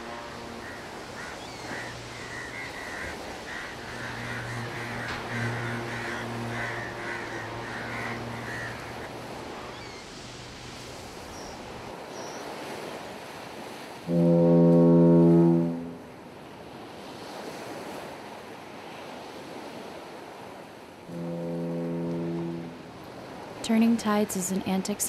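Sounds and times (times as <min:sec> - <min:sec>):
ship's foghorn blasts: 0:00.0 - 0:12.0, 0:13.6 - 0:18.0, 0:19.5 - 0:24.3
ocean surf washing: 0:00.0 - 0:25.0.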